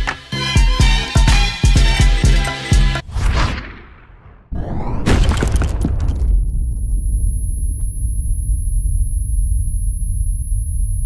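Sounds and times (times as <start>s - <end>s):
deep low rumble: 4.1s - 11.0s
faint high-pitched ringing tone: 6.7s - 11.0s.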